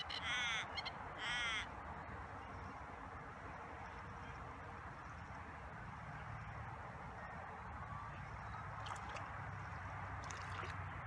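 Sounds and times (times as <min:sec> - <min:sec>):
small splashes on lake surface: 0:07.8 - 0:11.0.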